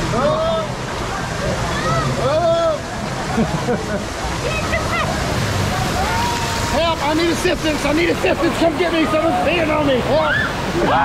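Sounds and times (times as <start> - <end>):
rushing splashing water: 0.0 - 11.0.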